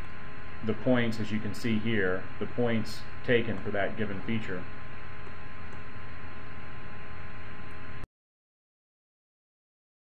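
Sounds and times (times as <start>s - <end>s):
low electrical hum: 0.0s - 8.1s.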